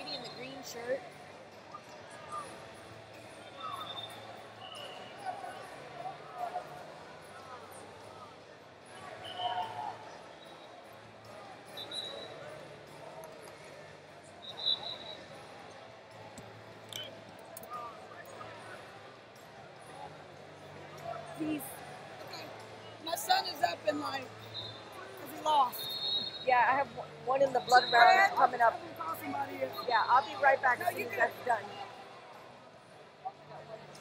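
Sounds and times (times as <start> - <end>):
babble of distant voices: 0.0 - 34.0.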